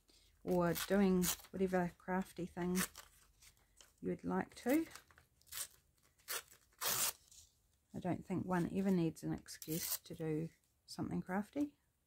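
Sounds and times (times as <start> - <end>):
paper tearing: 5.5 - 7.4.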